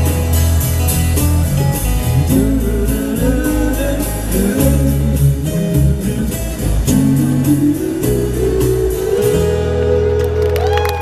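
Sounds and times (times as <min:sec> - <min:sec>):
acoustic guitar through pa: 0:00.0 - 0:11.0.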